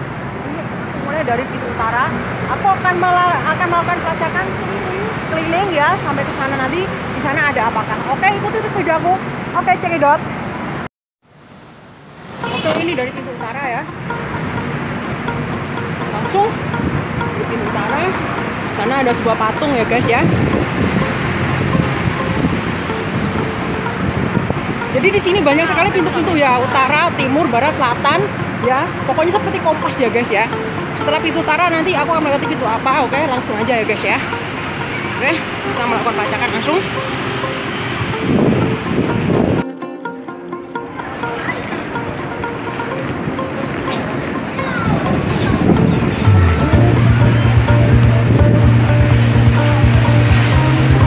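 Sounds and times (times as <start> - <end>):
city road traffic: 0.0 - 51.0
background music: 12.2 - 51.0
wind rumbling on microphone: 14.7 - 31.6, 33.7 - 39.6, 42.9 - 51.0.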